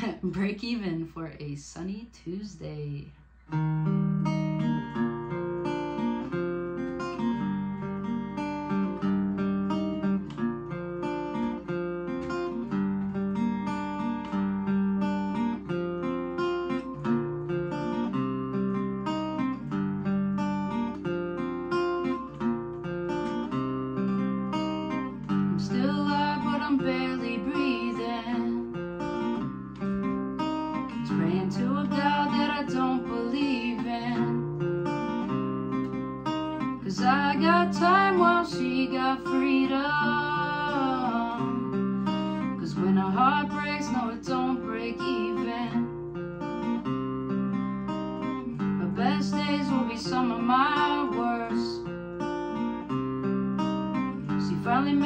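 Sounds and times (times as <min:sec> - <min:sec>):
fingerpicked acoustic guitar: 0:00.0 - 0:01.3, 0:03.2 - 0:55.0.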